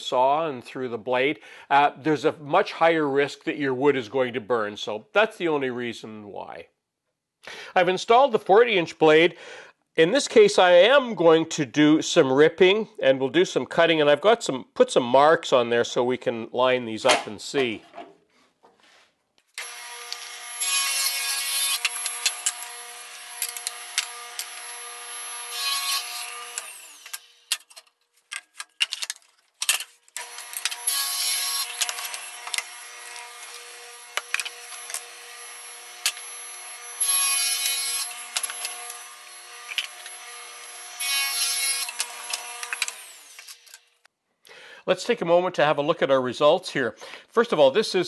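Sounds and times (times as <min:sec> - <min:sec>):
table saw cutting wood: 0:19.6 - 0:27.7, 0:30.2 - 0:43.9.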